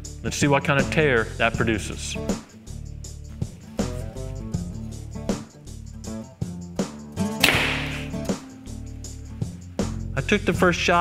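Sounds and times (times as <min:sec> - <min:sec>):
background music with plucked notes: 0:00.0 - 0:11.0
arrow whooshing into target: 0:07.4 - 0:08.3.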